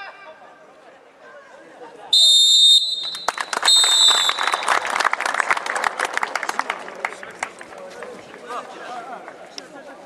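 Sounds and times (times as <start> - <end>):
referee's whistle blasts: 2.2 - 4.8
spectators applauding: 2.9 - 8.6.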